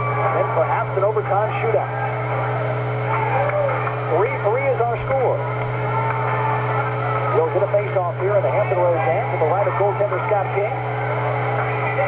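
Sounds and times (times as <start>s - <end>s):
radio broadcast crowd voices: 0.0s - 12.0s
steady low hum: 0.0s - 12.0s.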